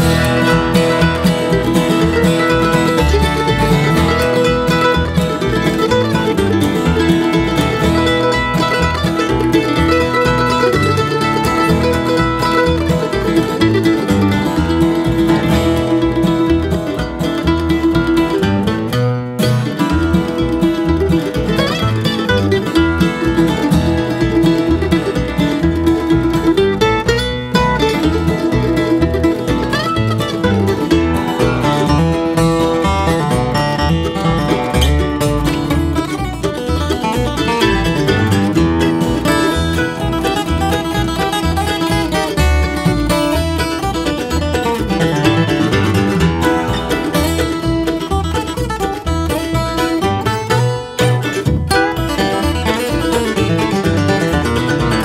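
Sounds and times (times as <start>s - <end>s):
acoustic guitar: 0.0s - 55.0s
mandolin: 0.0s - 55.0s
upright bass: 0.0s - 55.0s.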